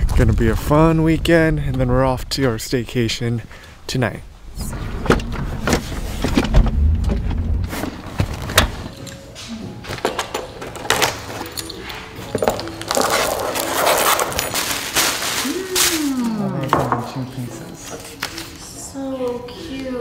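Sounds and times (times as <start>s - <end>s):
paper rustling and tearing: 12.9s - 16.7s.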